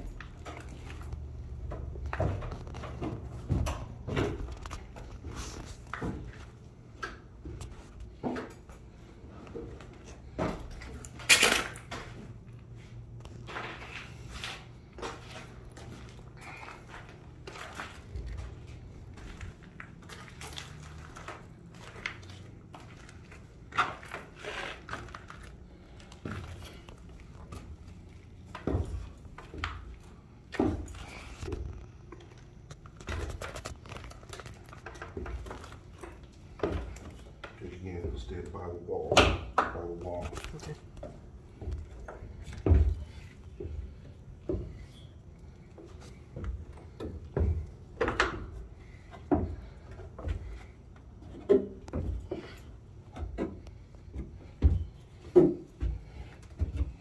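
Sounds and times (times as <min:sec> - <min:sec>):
footsteps on concrete and rubble: 0:09.4 - 0:38.4.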